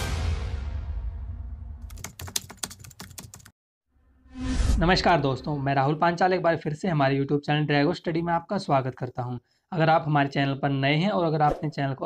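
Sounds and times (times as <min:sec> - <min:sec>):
computer keyboard typing: 0:01.8 - 0:03.5.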